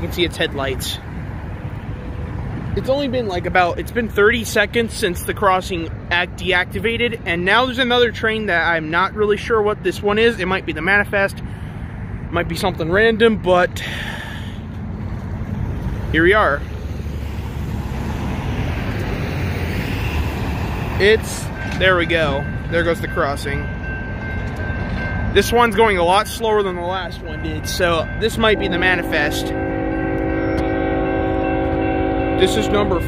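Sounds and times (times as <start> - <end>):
locomotive air horn blast: 28.5 - 33.0.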